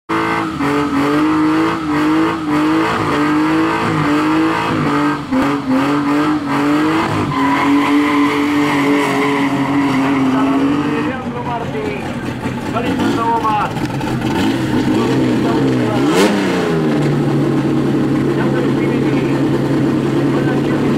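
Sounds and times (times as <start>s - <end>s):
car engine at high revs: 0.1s - 20.9s
tyres squealing: 6.4s - 11.4s.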